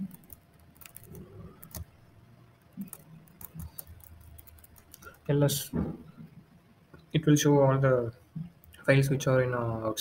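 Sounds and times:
keyboard typing clicks: 0.0 - 1.9, 2.6 - 5.2
man speaking: 5.3 - 5.8, 8.8 - 10.0.

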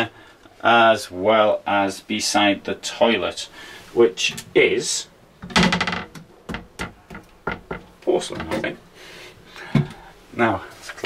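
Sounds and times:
toilet seat and lid knocks: 6.5 - 8.7.

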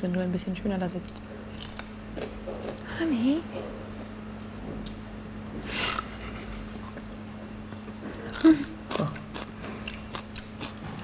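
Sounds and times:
person chewing with smacking: 1.2 - 2.9, 5.6 - 11.0.

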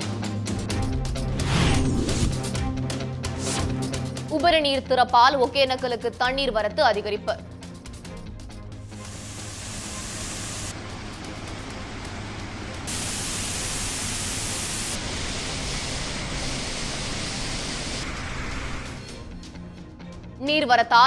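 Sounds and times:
waterfall rushing: 8.9 - 19.2.

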